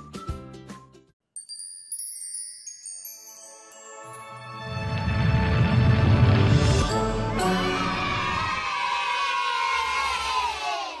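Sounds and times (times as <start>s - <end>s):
children cheering: 7.2s - 11.0s.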